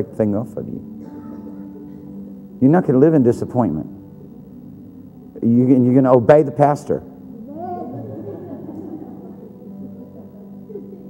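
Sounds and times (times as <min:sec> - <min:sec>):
held worship music chord: 0:00.0 - 0:11.0
faint murmuring voices: 0:07.2 - 0:11.0.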